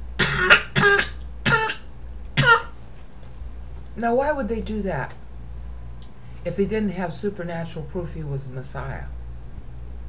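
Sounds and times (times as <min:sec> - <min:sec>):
person coughing: 0:00.2 - 0:02.8.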